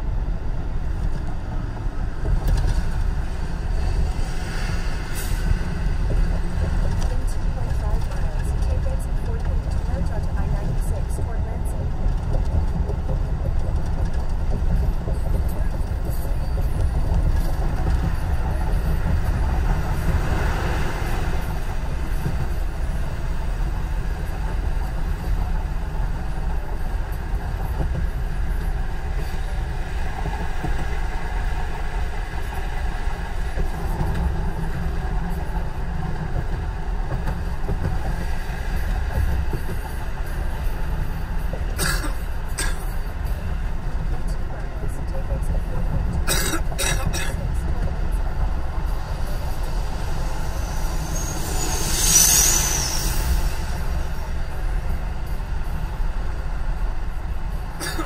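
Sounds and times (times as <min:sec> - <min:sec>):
passing traffic: 0:00.0 - 0:58.0
tyre and engine rumble: 0:00.0 - 0:58.0
wind hiss: 0:48.4 - 0:58.0.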